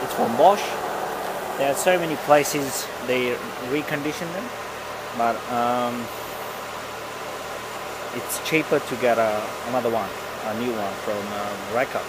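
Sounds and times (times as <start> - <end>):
car engine idling: 0.0 - 12.0
radiator fan rushing air: 0.0 - 12.0.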